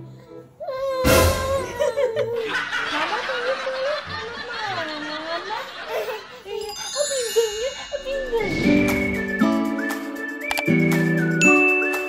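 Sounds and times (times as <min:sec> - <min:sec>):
light cheerful background music: 0:00.0 - 0:04.9, 0:05.9 - 0:12.0.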